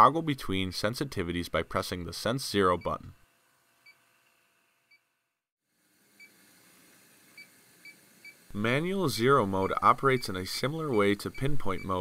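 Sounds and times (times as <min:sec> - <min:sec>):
faint electronic beeps: 0:09.4 - 0:12.0.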